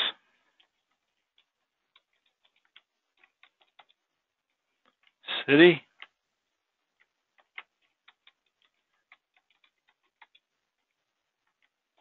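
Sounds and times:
computer keyboard typing: 0.5 - 5.2, 5.8 - 12.0.

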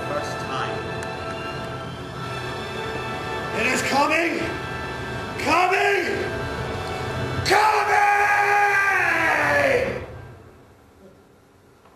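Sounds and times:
man's long drawn-out cry: 7.4 - 10.1.

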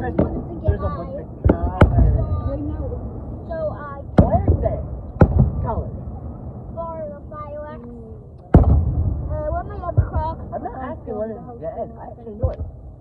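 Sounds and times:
onlookers' voices: 0.0 - 12.8.

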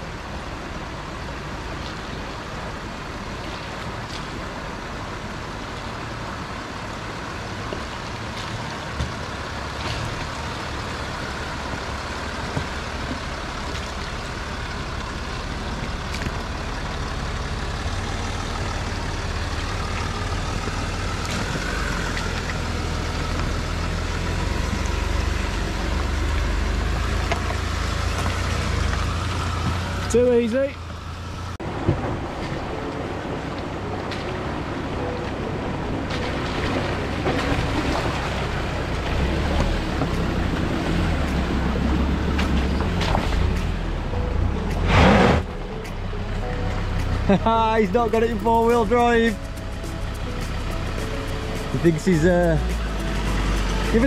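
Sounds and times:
vehicle engine rumble: 0.0 - 54.0.

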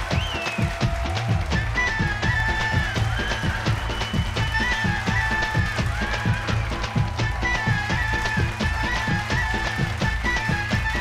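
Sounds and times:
dance music with drum beat: 0.0 - 11.0.

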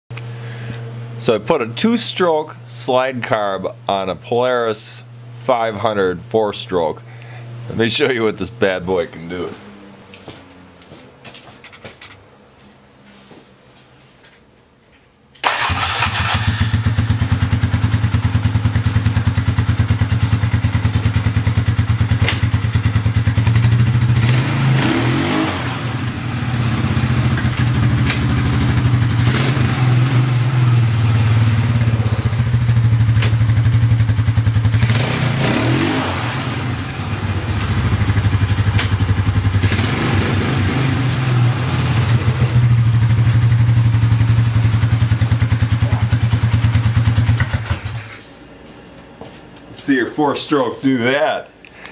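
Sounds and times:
quad bike engine revving: 15.4 - 48.1.

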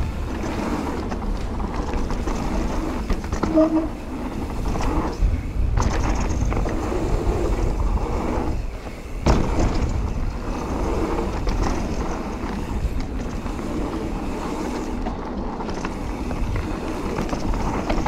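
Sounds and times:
wind on microphone: 0.0 - 15.1
bike chain and frame rattle: 0.0 - 18.0
tyres rumbling on dirt: 0.0 - 18.0
bike landing thump: 9.2 - 10.0.

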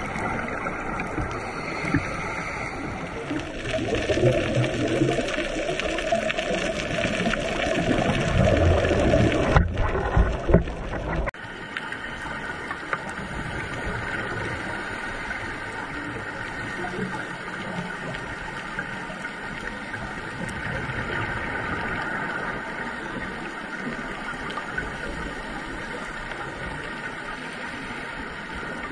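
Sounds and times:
underwater rushing hiss: 0.0 - 28.9.

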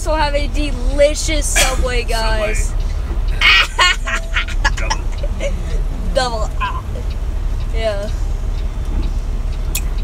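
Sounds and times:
truck rumble: 0.0 - 10.0
child laughing: 3.4 - 5.9.

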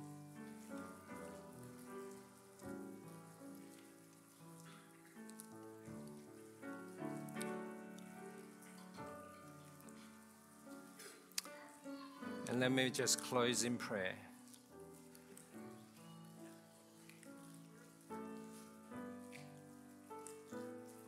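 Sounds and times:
faint hiss: 0.0 - 21.0
soft slow instrumental music: 0.0 - 21.0.

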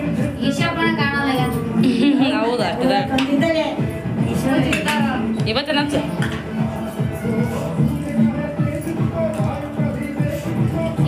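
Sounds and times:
crowd of voices: 0.0 - 11.0.

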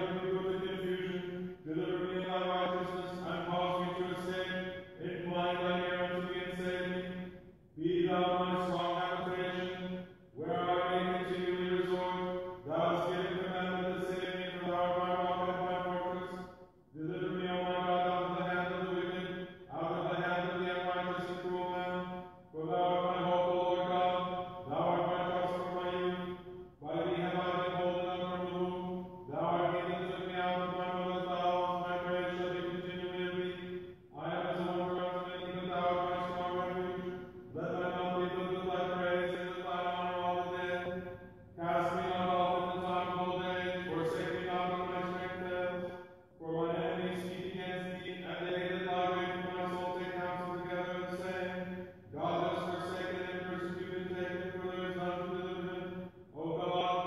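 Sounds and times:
man chanting prayers: 0.0 - 57.0.

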